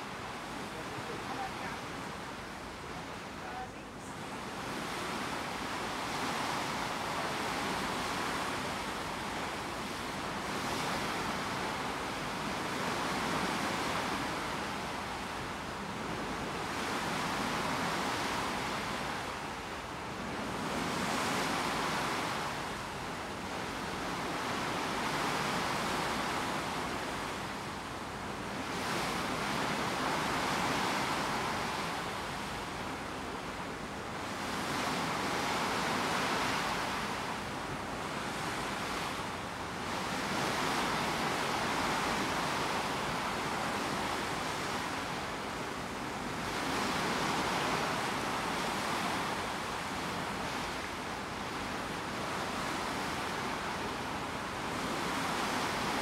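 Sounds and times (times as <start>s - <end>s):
water rushing along ship hull: 0.0s - 56.0s
wind: 0.0s - 56.0s.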